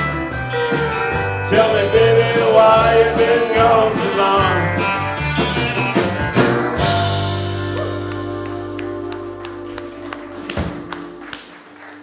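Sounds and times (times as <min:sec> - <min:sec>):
country band playing: 0:00.0 - 0:11.8.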